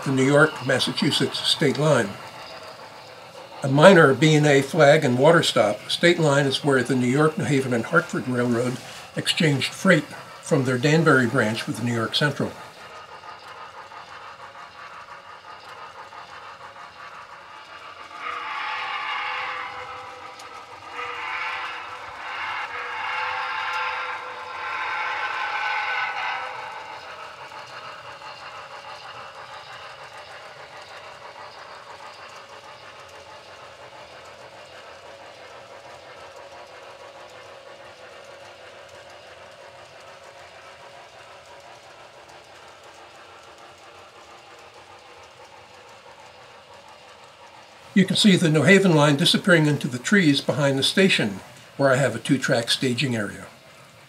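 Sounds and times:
freight train rolling by: 0.0s - 54.0s
steam locomotive whistle: 18.2s - 26.9s.

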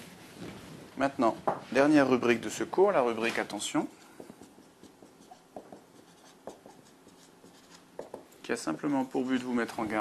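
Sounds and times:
marker scratching on whiteboard: 3.3s - 8.5s
pen tip tapping board: 4.2s - 6.8s, 8.0s - 8.3s.

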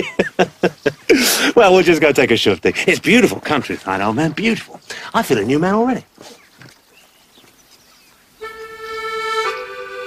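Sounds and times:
accordion chords: 8.4s - 10.0s.

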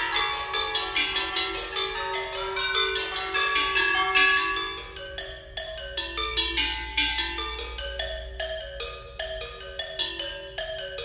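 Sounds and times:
metal percussion ringing: 0.0s - 11.0s.

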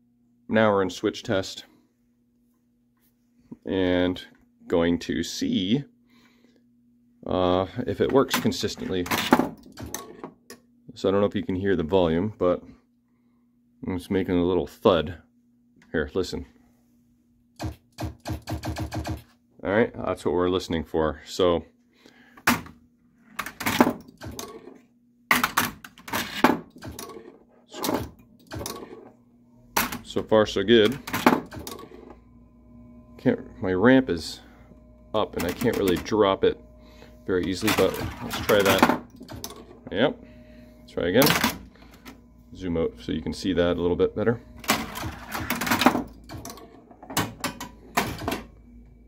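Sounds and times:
low machine hum: 0.0s - 18.0s, 18.7s - 49.0s
pinball switch thuds and knocks: 8.1s - 10.4s, 17.6s - 19.2s, 25.3s - 29.0s, 29.7s - 30.2s, 30.8s - 31.9s, 41.2s - 41.7s, 44.6s - 48.6s.

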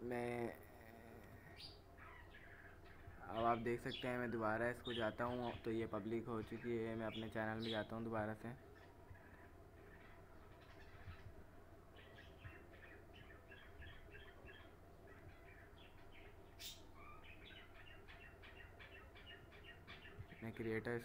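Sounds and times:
low room hum: 0.0s - 21.0s.

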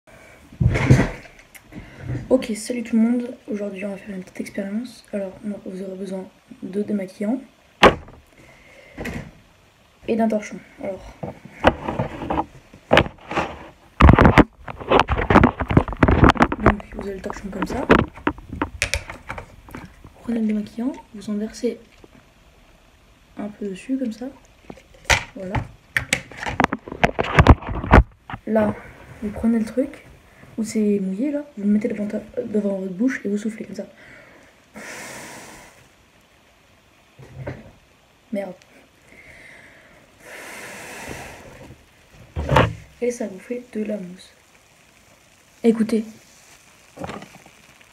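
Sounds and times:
short breath: 8.4s - 9.1s, 34.0s - 35.8s, 39.1s - 41.6s
person blowing through wet towel: 34.8s - 36.0s, 40.2s - 41.8s.

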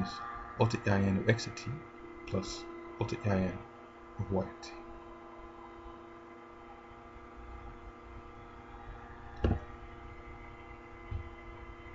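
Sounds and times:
electrical hum: 0.0s - 11.9s.

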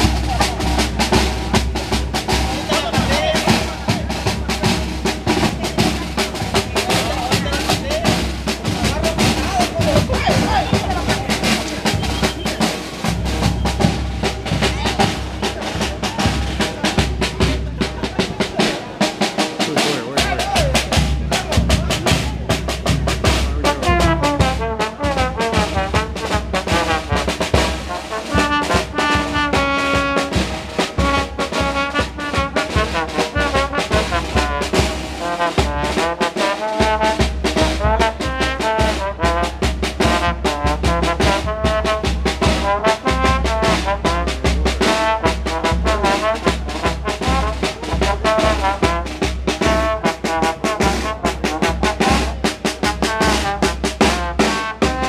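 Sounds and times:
trombone melody: 0.0s - 22.2s, 22.8s - 55.0s
drum beat: 0.0s - 55.0s.

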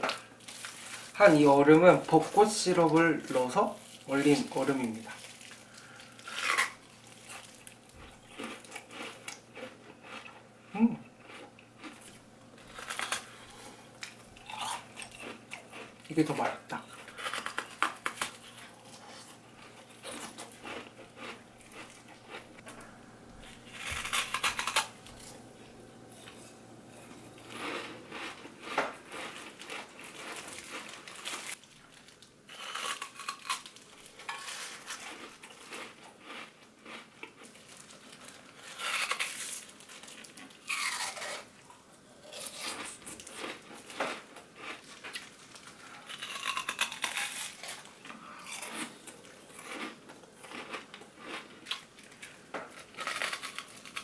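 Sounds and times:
ice being chewed: 2.0s - 54.0s.

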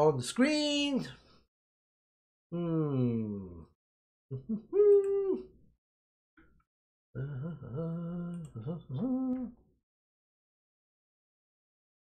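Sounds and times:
man humming: 2.5s - 3.7s, 4.3s - 5.5s, 7.2s - 9.6s.

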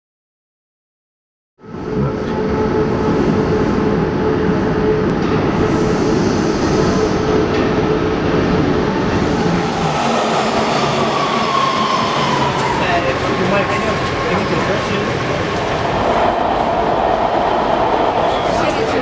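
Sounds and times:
subway train rumbling: 1.6s - 19.0s.

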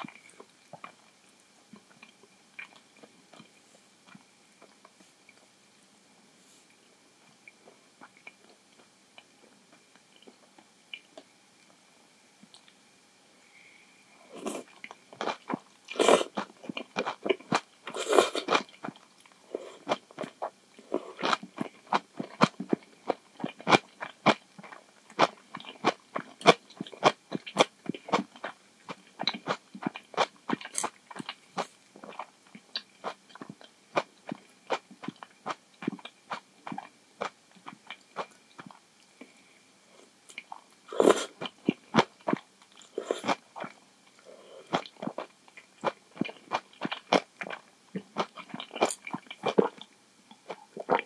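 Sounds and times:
chewing noodles: 14.4s - 38.8s, 40.3s - 51.0s
person slurping noodles: 15.9s - 16.5s, 17.9s - 18.6s, 40.9s - 41.4s, 42.9s - 43.4s
wet chewing: 44.7s - 49.9s.

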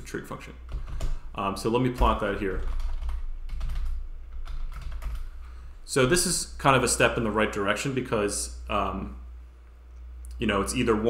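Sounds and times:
steady low hum: 0.0s - 11.0s
keyboard keys clicking: 2.0s - 5.2s.

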